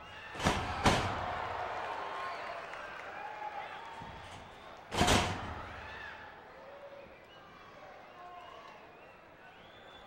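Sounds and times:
crowd chatter and shouts: 0.0 - 10.0.

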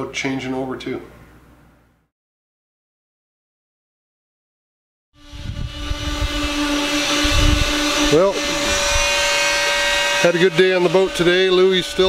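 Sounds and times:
wind rumbling on microphone: 5.2 - 10.0
power tool running: 5.2 - 12.0.

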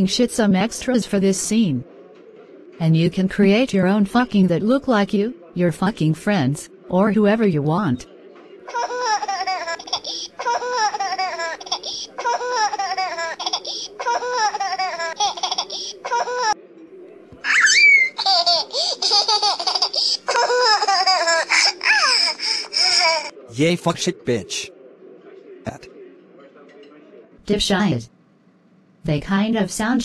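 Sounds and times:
high-pitched laughter: 17.4 - 23.3.

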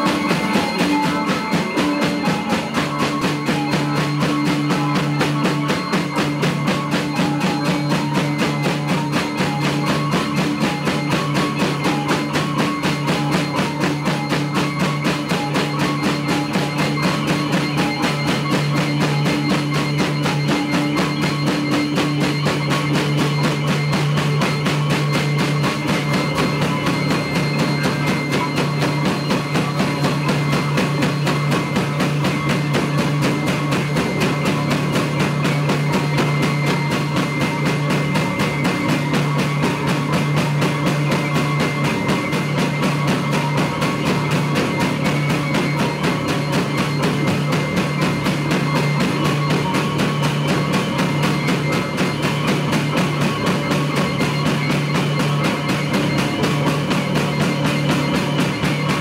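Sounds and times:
drum kit driving beat: 0.0 - 59.0
hurdy-gurdy: 0.0 - 59.0
live band playing: 0.0 - 59.0.

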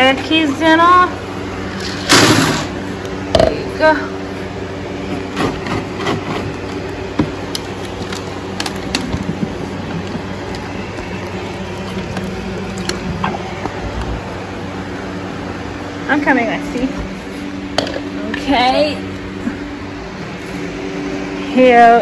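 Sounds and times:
motor hum: 0.0 - 22.0
horse eating from bucket: 5.4 - 14.4.

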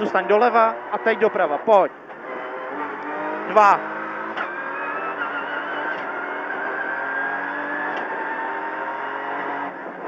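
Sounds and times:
rally car engine accelerating: 0.0 - 10.0.

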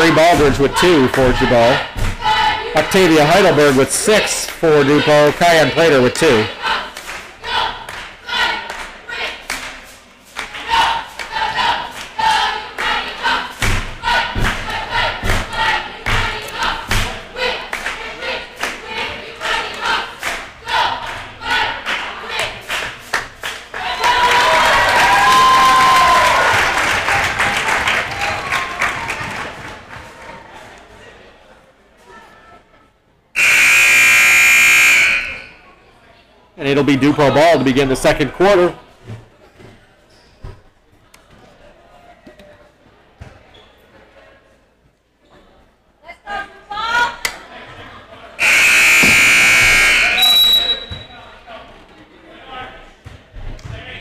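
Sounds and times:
cheerleaders chanting in unison: 0.0 - 9.8, 10.4 - 23.0
rhythmic claps and stomps: 6.9 - 24.9
loud cheering and yelling: 23.7 - 29.8
gym buzzer: 33.4 - 35.6, 48.4 - 51.0.

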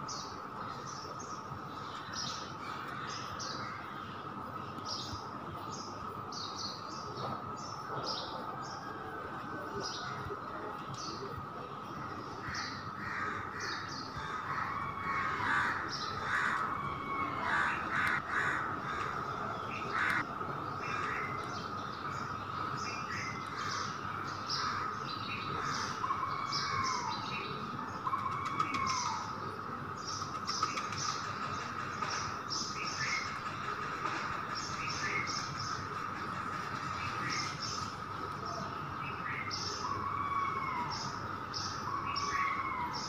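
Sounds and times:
birds chirping: 0.0 - 43.0
falling bird calls: 0.0 - 43.0
harsh bird calls: 0.0 - 43.0
steady high-pitched hum: 0.0 - 43.0.

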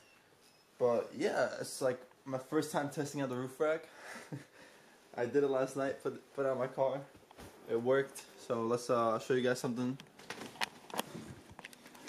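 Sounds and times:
footsteps: 7.1 - 8.3.

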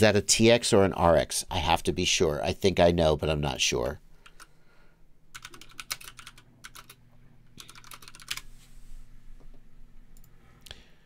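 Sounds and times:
faint low hum: 0.0 - 11.0
keyboard typing: 5.3 - 7.0, 7.6 - 8.5.

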